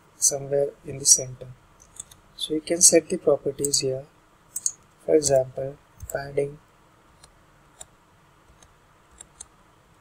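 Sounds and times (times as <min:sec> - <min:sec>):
computer keys clicking: 0:08.5 - 0:09.5.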